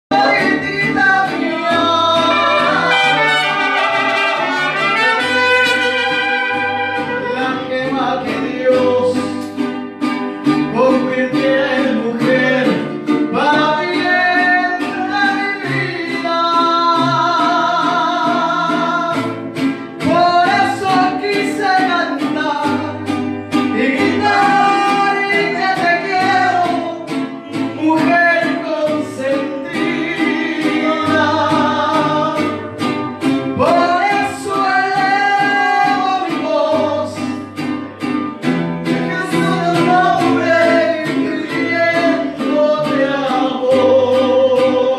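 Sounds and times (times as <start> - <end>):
bass line: 0.1 - 9.4
guitars and brass: 0.1 - 44.9
man singing with vibrato: 0.1 - 44.9.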